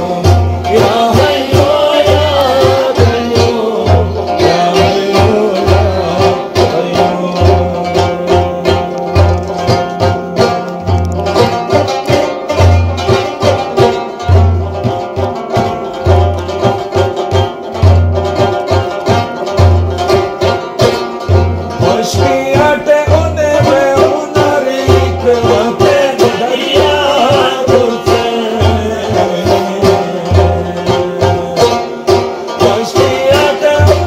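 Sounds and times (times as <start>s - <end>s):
frame drum beating: 0.0s - 34.0s
plucked lute melody: 0.0s - 34.0s.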